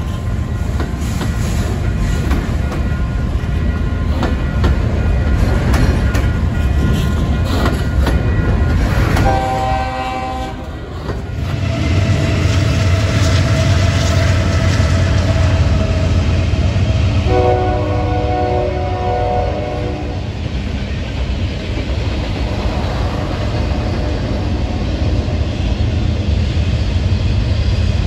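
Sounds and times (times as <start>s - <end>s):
freight train rumbling past: 0.0s - 28.0s
locomotive air horn: 9.2s - 10.9s, 17.2s - 20.2s.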